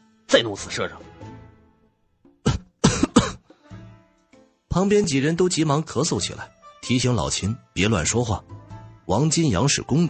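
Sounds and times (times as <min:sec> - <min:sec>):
man coughing: 0:02.4 - 0:03.5.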